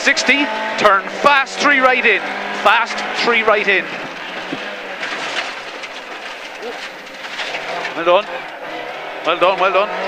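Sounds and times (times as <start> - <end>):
car engine at speed: 0.0 - 10.0
road noise: 0.0 - 10.0.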